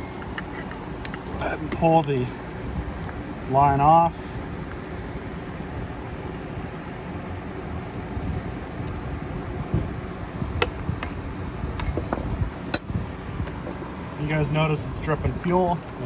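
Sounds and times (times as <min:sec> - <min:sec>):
low background hum: 0:00.0 - 0:16.0.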